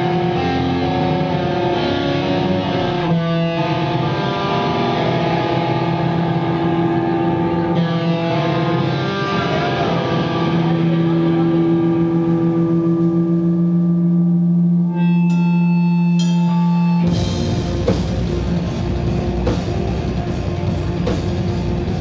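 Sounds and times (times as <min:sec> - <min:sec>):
electric guitar chords ringing: 0:00.0 - 0:22.0
steady low drone: 0:00.0 - 0:22.0.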